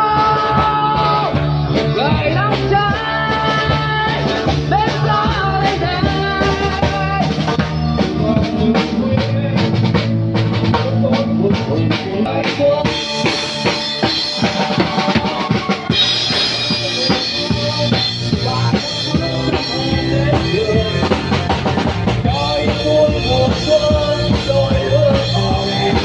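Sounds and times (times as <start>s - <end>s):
live rock band playing: 0.0s - 26.0s.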